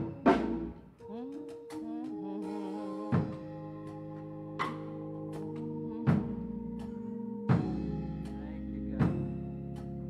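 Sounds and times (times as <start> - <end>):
voices singing: 0.0 - 4.0
sustained organ chords: 0.0 - 10.0.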